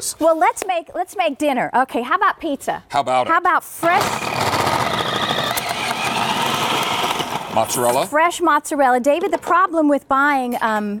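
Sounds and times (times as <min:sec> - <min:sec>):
food processor motor whine: 0:03.8 - 0:08.1.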